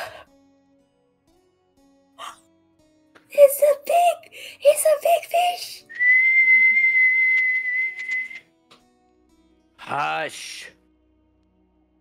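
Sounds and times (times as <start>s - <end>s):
person whistling high note: 5.9s - 8.4s.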